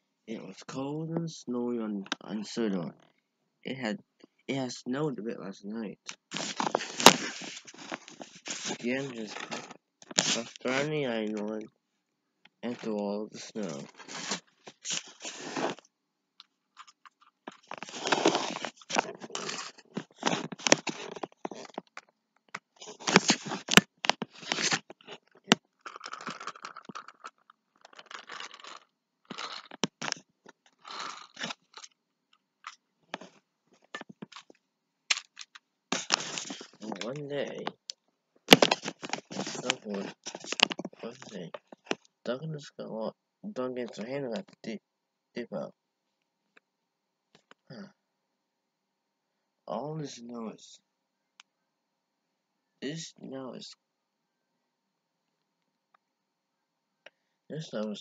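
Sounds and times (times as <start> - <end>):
rustling handling noise: 6.1 - 11.7, 12.6 - 15.9, 16.8 - 31.9, 32.6 - 42.1
paper towels crinkling and scraping: 6.3 - 11.3, 12.7 - 15.8, 17.6 - 21.8, 22.8 - 25.2, 38.5 - 41.4.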